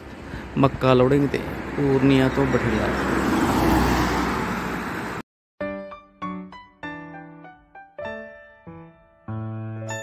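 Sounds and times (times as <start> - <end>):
vehicle driving past: 2.8 - 5.2.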